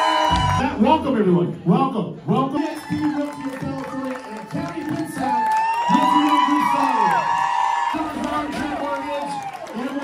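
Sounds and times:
high held whoops: 0.0 - 0.8, 5.0 - 9.8
crowd cheering: 0.0 - 1.2, 2.3 - 10.0.

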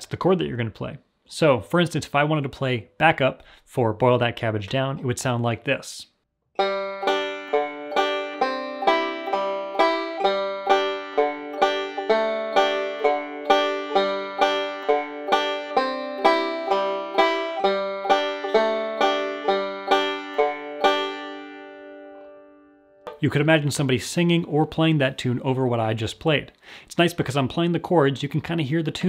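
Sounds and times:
banjo picking: 6.6 - 22.4.

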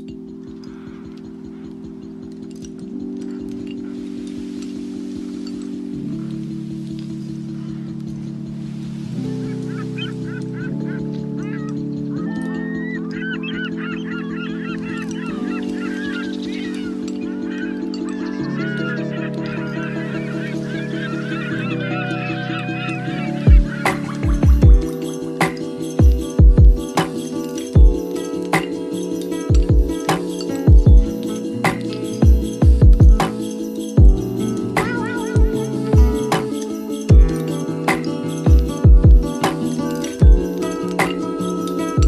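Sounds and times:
soft keyboard chords: 0.0 - 42.0.

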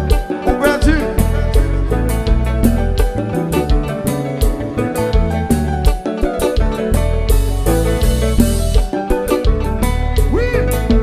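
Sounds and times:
bass: 0.0 - 11.0
drums: 0.0 - 11.0
electric guitar: 0.0 - 11.0.

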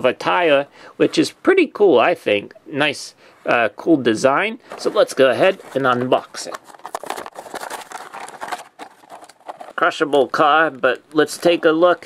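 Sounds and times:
plastic packaging crinkling: 4.6 - 12.0.

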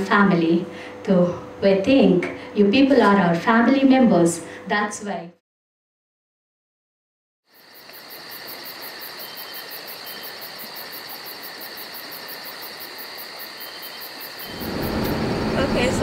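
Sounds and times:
cricket-like insect chorus: 7.5 - 15.6.

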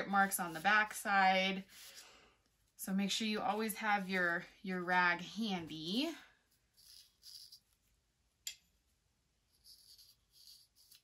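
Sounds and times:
paintbrush scratching on wood: 0.0 - 2.1, 3.0 - 4.9, 5.5 - 7.9, 9.5 - 11.0.

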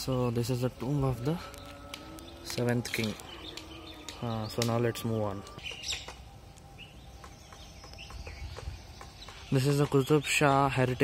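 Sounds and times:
faint bird chirps: 0.0 - 11.0
wind rumbling on microphone: 0.0 - 11.0.

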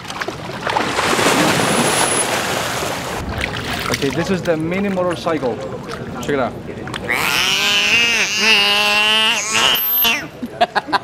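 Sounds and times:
dolphins making nasal calls: 7.1 - 10.4.

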